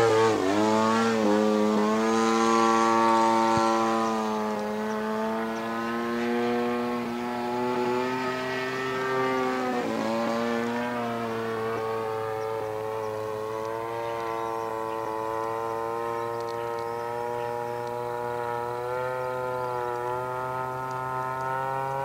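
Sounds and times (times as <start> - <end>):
model plane engine droning: 0.0 - 22.0.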